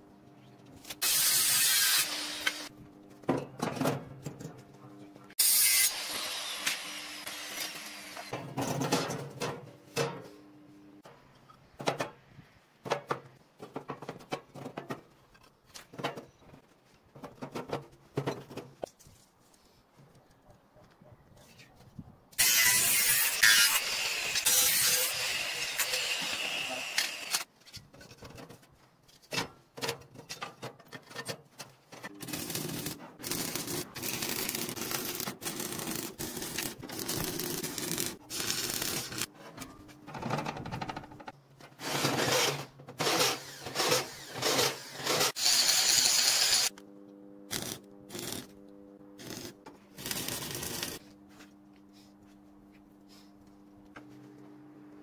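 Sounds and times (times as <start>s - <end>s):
welding arc crackling: 32.3s - 39.3s, 47.5s - 48.5s, 49.2s - 51.0s.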